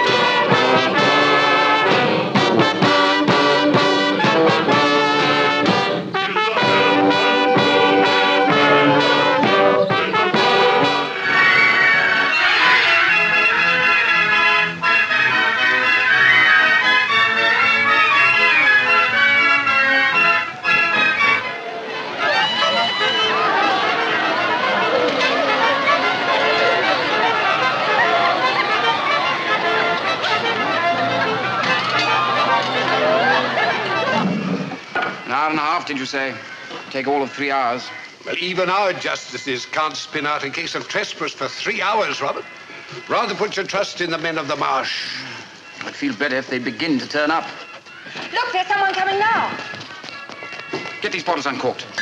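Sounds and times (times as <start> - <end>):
brass band playing: 0.0 - 36.7
crowd chattering: 0.0 - 52.0.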